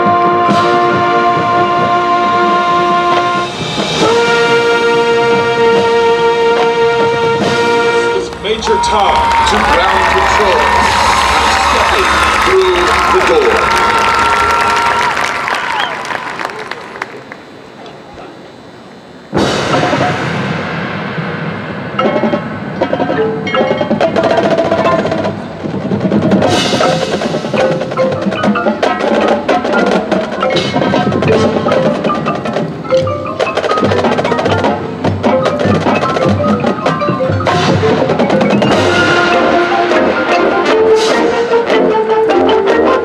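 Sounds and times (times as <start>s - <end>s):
brass section holding chords: 0.0s - 15.2s, 37.2s - 43.0s
percussion strikes: 0.0s - 15.7s, 19.3s - 43.0s
cymbals crashing: 19.3s - 41.8s.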